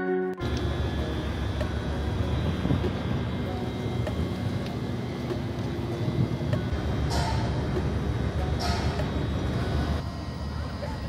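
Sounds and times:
train low rumble and hum: 0.4s - 11.0s.

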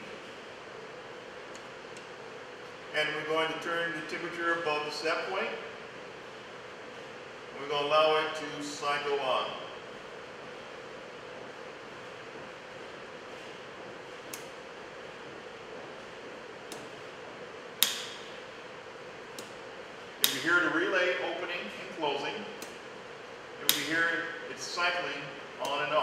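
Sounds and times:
steady low hiss: 0.0s - 26.0s.

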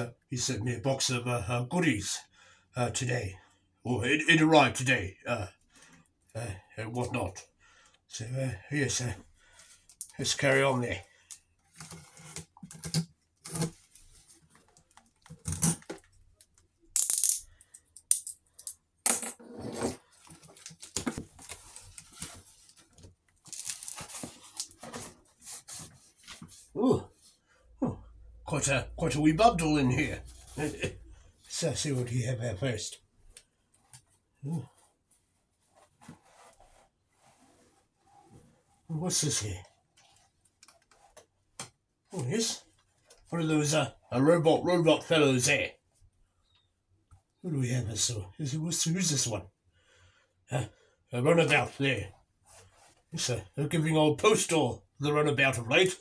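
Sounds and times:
cardboard parcel rustling: 11.1s - 16.4s, 19.5s - 26.8s.

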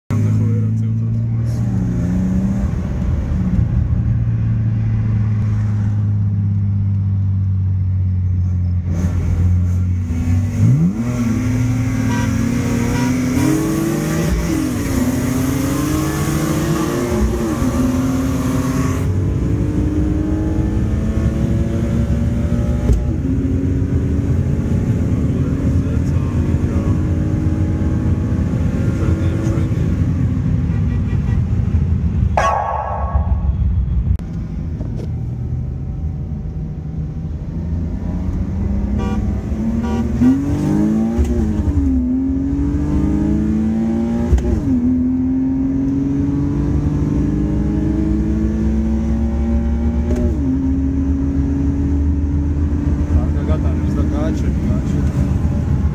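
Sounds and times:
car engine revving: 0.1s - 55.9s.

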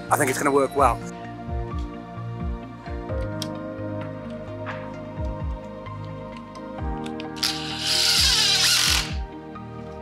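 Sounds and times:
background music: 0.0s - 10.0s
cordless drill driving a screw: 7.4s - 9.2s.

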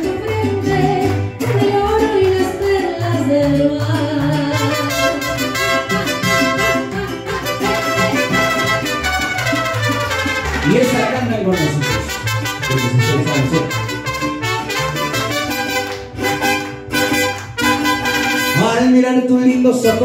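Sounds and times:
guests clapping along: 0.0s - 18.6s
mariachi band playing: 0.0s - 20.0s.

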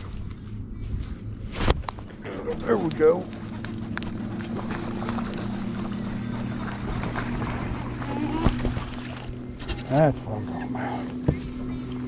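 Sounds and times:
water noise: 0.0s - 12.0s.

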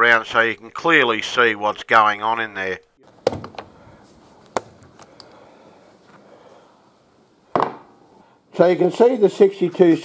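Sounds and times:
knock: 7.5s - 7.9s.

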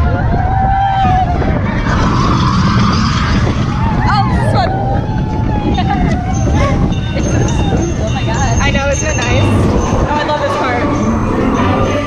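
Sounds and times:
riders screaming and whooping: 0.0s - 12.0s
roller coaster train rumbling on track: 0.0s - 12.0s
wind rushing over microphone: 0.0s - 12.0s.

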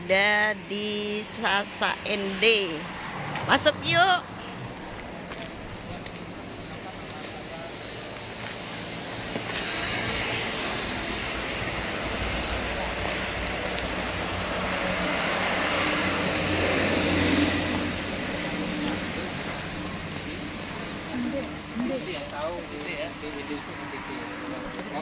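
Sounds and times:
motor engine passing by: 9.3s - 22.2s.

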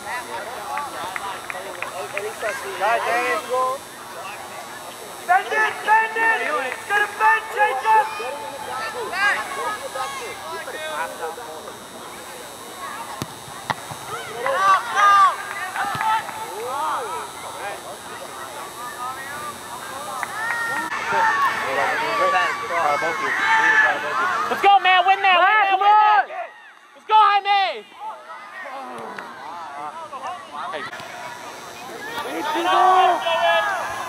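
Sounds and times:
people shouting outdoors: 5.3s - 10.5s, 14.1s - 16.4s, 20.4s - 29.7s, 32.3s - 34.0s.

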